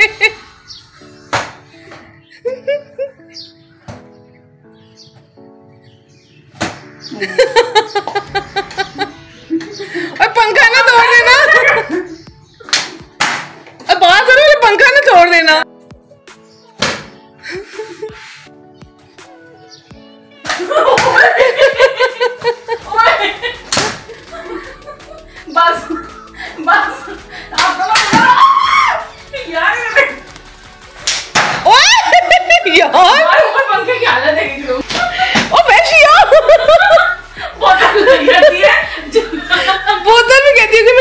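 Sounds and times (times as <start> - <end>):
background music: 0.0 - 41.0
plastic bottle slap: 1.3 - 1.7, 6.6 - 6.9, 12.6 - 13.7, 16.8 - 17.2, 20.4 - 21.2, 23.6 - 24.2, 27.6 - 28.3, 30.3 - 31.7, 34.8 - 35.5
loud rapid laughter: 20.6 - 27.2, 31.7 - 33.8, 35.0 - 40.2
people shrieking and shouting: 26.4 - 30.2, 31.6 - 32.3.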